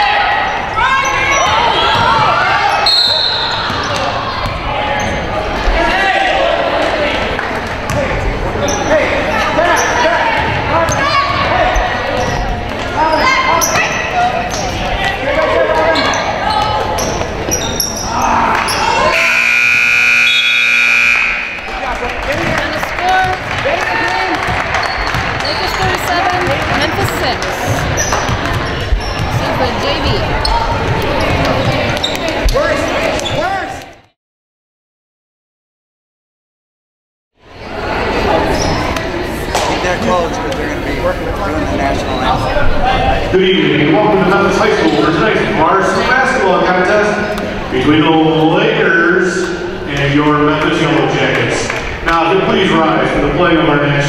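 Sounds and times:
voices of players and spectators: 0:00.0 - 0:34.2, 0:37.4 - 0:54.0
scoreboard horn: 0:19.1 - 0:21.8
basketball dribbling: 0:24.3 - 0:32.4.

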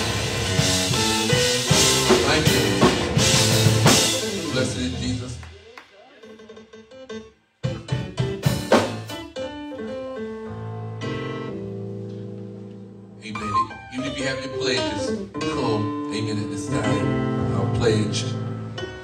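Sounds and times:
held keyboard chords: 0:00.0 - 0:05.3, 0:06.2 - 0:19.0
drum hits: 0:00.0 - 0:06.9, 0:07.6 - 0:09.2
church band music: 0:00.0 - 0:19.0.

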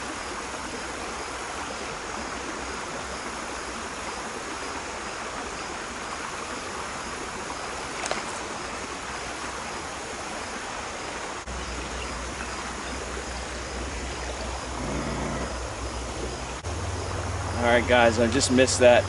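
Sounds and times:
creek running over stones: 0:00.0 - 0:19.0.

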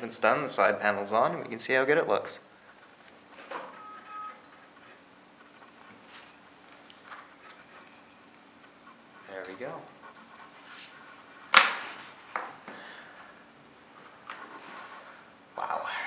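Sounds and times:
computer humming: 0:00.0 - 0:16.0.

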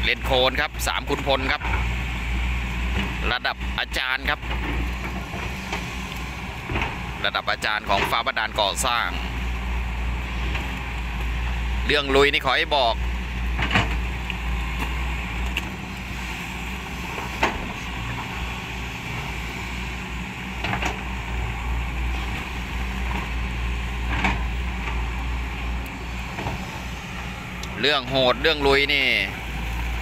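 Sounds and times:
excavator diesel engine running: 0:00.0 - 0:30.0.

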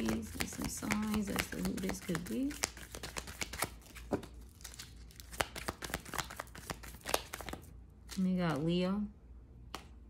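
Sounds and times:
cards being shuffled: 0:00.0 - 0:08.7.

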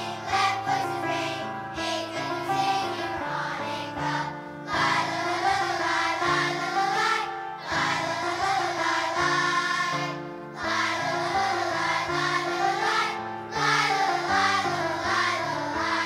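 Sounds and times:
children's choir singing: 0:00.0 - 0:16.0.

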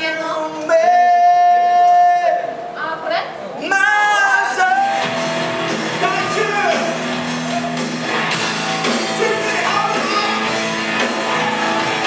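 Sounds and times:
person singing in a large hall: 0:00.0 - 0:02.8, 0:03.5 - 0:12.0.

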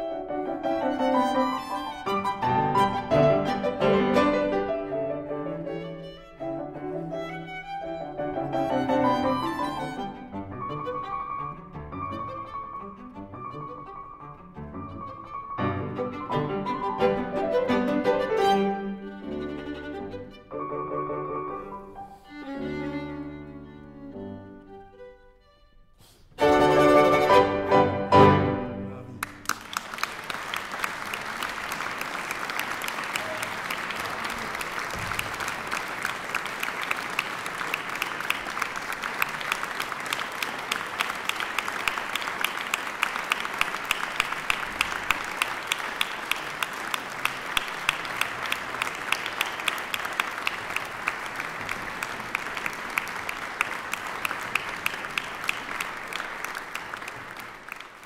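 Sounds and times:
audience applauding: 0:00.8 - 0:05.0, 0:07.2 - 0:11.1, 0:29.0 - 0:58.0.

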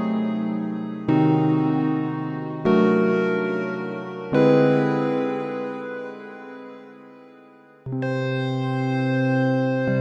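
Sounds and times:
piano-like keyboard chord: 0:00.0 - 0:10.0.

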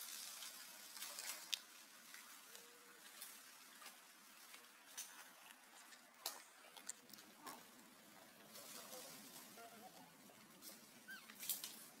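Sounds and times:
brief crackle: 0:10.6 - 0:11.9
faint high chirping calls: 0:11.0 - 0:11.4.

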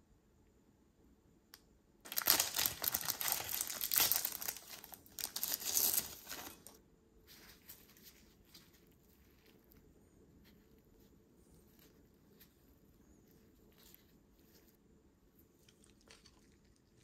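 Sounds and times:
foil wrapper crinkling: 0:02.1 - 0:06.8.

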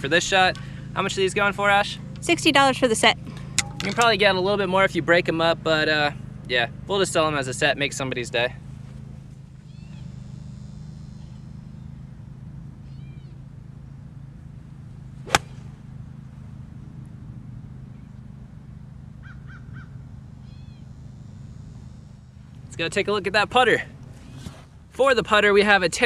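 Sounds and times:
golf club striking ball: 0:03.3 - 0:04.2, 0:15.2 - 0:16.0
birds chirping: 0:08.6 - 0:13.4, 0:19.2 - 0:24.4.

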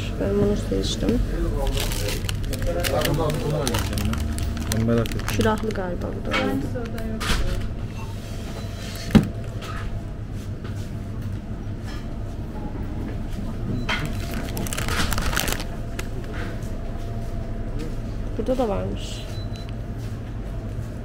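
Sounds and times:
steady freezer hum: 0:00.0 - 0:21.0
plastic bag crinkling: 0:01.6 - 0:07.6, 0:14.0 - 0:16.3.

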